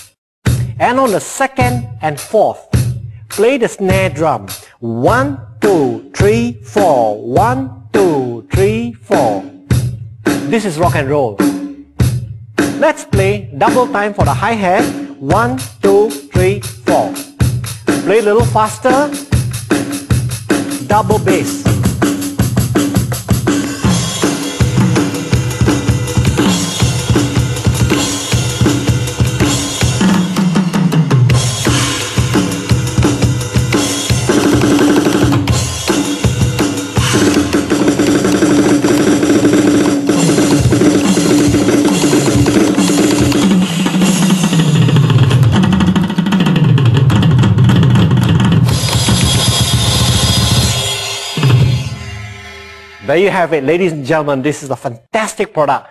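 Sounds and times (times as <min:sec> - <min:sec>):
synthesized rock drum beat: 0:00.0 - 0:53.6.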